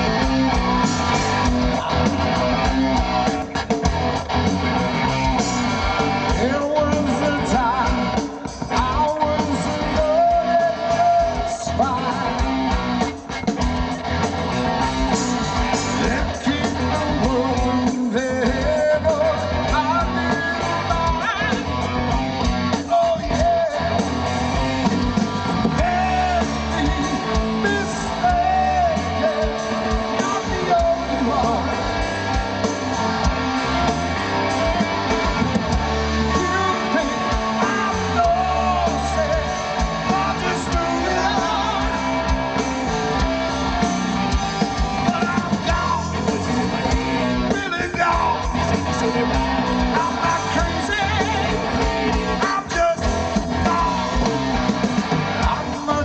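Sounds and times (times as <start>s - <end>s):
live rock band playing: 0.0s - 56.0s
man singing: 1.0s - 2.7s, 6.2s - 12.7s, 15.6s - 21.9s, 22.6s - 24.3s, 25.6s - 32.4s, 34.6s - 42.9s, 44.9s - 46.6s, 47.4s - 54.5s, 55.3s - 56.0s.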